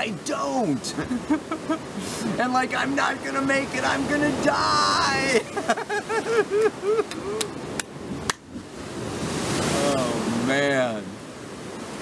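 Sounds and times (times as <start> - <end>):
surf breaking on rocks: 0.0 - 12.0.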